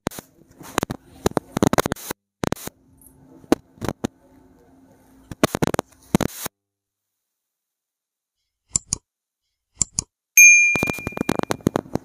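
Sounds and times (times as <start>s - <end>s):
button click: 10.4s - 11.6s
notification bell ding: 10.4s - 11.6s.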